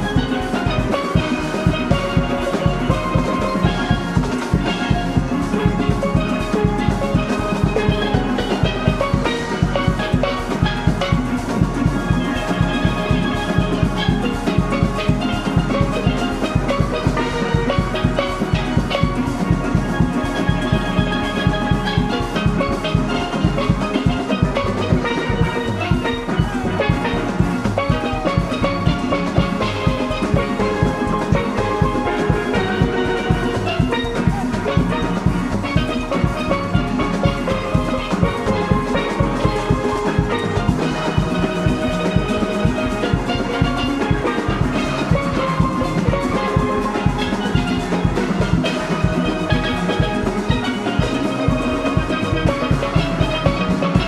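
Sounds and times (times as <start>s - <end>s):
drum kit beat: 0.0s - 54.0s
steelpans playing melody: 0.0s - 54.0s.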